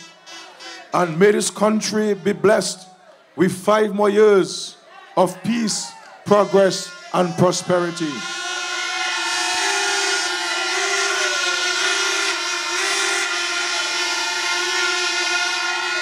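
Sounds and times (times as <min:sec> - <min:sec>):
horns blaring in a chord: 0:00.0 - 0:02.8, 0:06.3 - 0:16.0.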